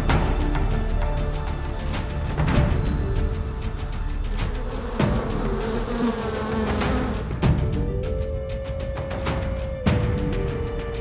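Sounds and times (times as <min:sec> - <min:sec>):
music playing: 0:00.0 - 0:11.0
honeybees buzzing: 0:02.6 - 0:07.5.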